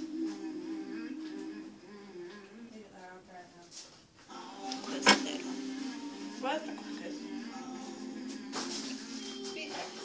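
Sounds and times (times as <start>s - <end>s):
music with held notes: 4.3s - 10.0s.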